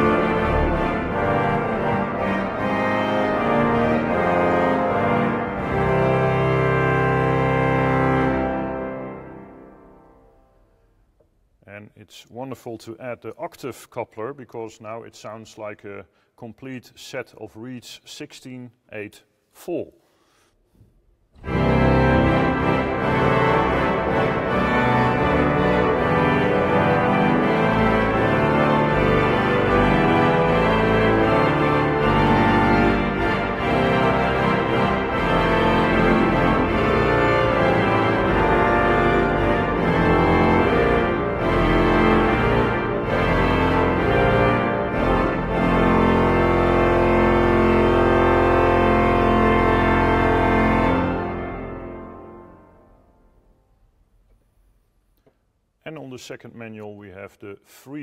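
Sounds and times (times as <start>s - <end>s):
pipe organ reed chords: 0.0s - 10.9s, 21.4s - 53.9s.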